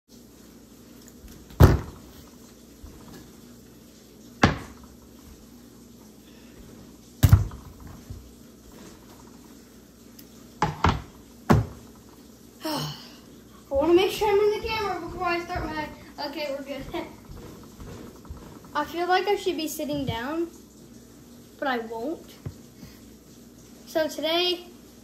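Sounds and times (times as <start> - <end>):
bottles knocking on countertop: 1.6 - 2.0, 4.4 - 4.8, 10.6 - 11.8.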